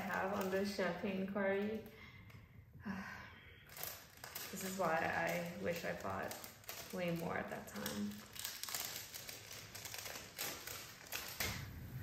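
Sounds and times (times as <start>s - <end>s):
plastic bags crinkling: 0.0s - 2.0s, 3.6s - 12.0s.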